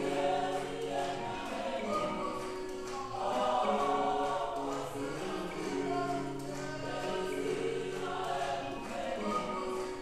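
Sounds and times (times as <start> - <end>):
choir singing over loudspeakers: 0.0 - 10.0.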